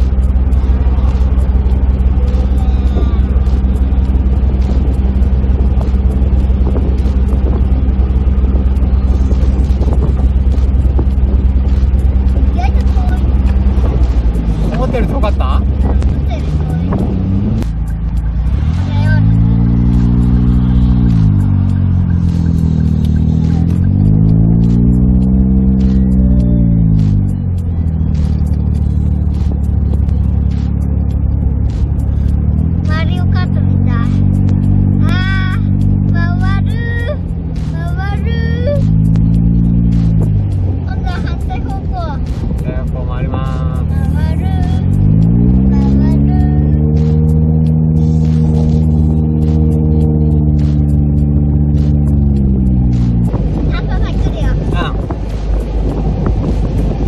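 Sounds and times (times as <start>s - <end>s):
car engine droning: 0.0s - 57.0s
wind and road noise: 0.0s - 57.0s.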